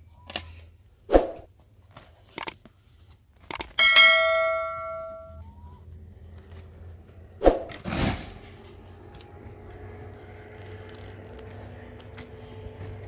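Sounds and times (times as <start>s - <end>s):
metal basin struck and ringing: 3.8s - 5.4s.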